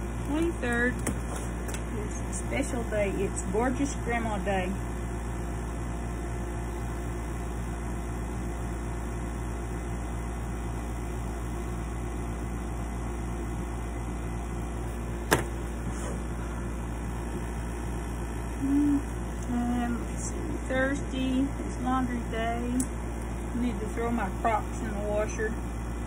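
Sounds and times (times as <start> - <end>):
machine hum with faint pulse: 0.0 - 26.0.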